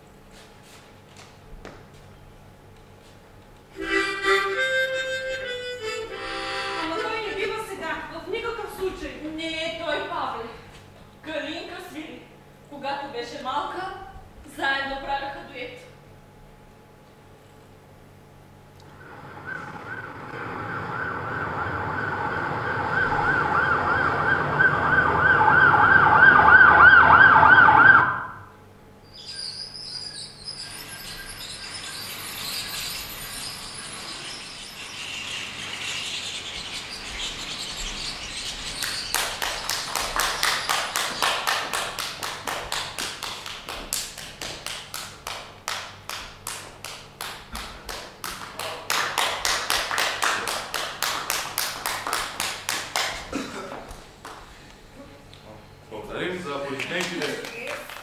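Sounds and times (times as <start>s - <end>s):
loud warbling siren-like tone: 18.9s - 28.6s
rhythmic clapping in unison: 38.6s - 53.3s, 56.8s - 58.0s
audience applause: 38.8s - 45.9s, 47.2s - 53.4s, 56.7s - 58.0s.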